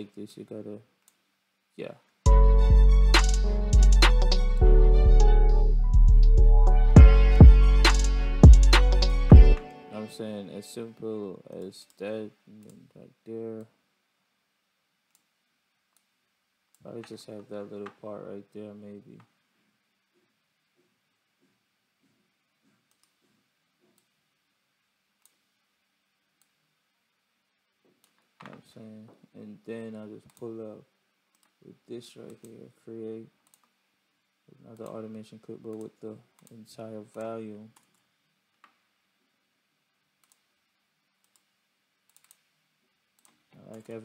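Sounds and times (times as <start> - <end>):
computer mouse clicks: 15.1 - 15.3, 22.8 - 23.2, 25.2 - 25.5, 28.0 - 28.3, 31.3 - 31.6, 33.4 - 33.8, 35.7 - 38.8, 40.2 - 40.5, 41.2 - 41.5, 42.1 - 42.5, 43.2 - 44.0
faint computer mouse clicks: 22.9 - 23.2, 25.2 - 25.4, 33.4 - 33.8, 40.2 - 40.5, 41.2 - 41.5, 42.1 - 42.5.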